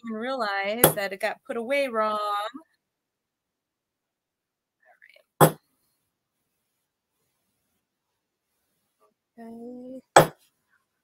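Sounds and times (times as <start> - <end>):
sharp metallic knock: 5.4 - 5.6.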